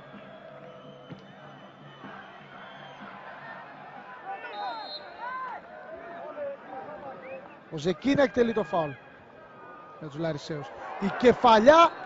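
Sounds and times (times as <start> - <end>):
stadium crowd hubbub: 0.0 - 12.0.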